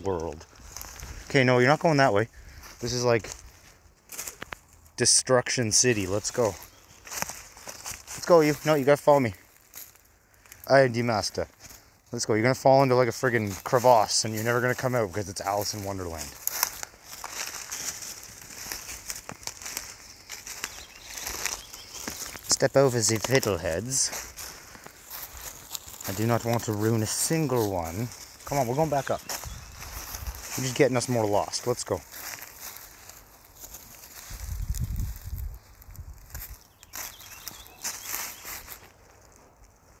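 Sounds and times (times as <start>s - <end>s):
footsteps crunching through dry leaves: 0.0s - 5.0s, 5.6s - 40.0s.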